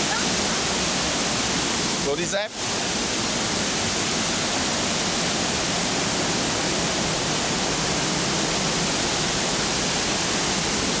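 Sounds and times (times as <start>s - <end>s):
waterfall roaring: 0.0s - 11.0s.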